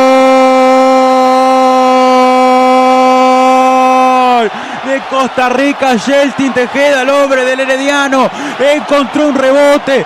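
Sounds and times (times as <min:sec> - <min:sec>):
commentator shouting goal: 0:00.0 - 0:10.0
rapid commentary narration: 0:04.4 - 0:10.0.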